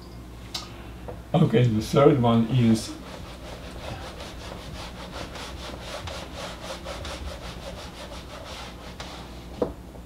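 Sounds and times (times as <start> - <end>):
eraser rubbing on whiteboard: 2.6 - 9.4.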